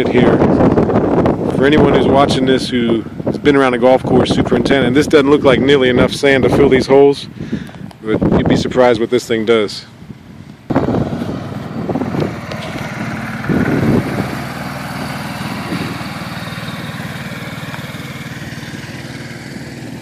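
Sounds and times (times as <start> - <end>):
utility vehicle engine running: 9.9 - 20.0.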